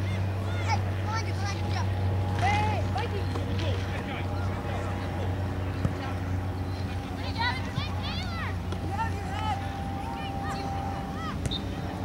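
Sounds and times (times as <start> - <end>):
players shouting and calling: 0.0 - 12.0
steady low hum: 0.0 - 12.0.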